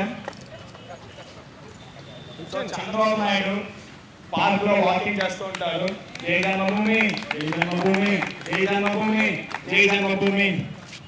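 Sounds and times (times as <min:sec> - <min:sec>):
man's voice: 0:02.6 - 0:10.7.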